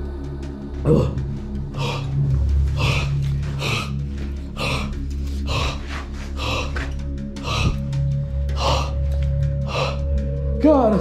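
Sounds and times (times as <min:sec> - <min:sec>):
ambient music drone: 0:00.0 - 0:11.0
man breathing heavily: 0:00.8 - 0:10.4.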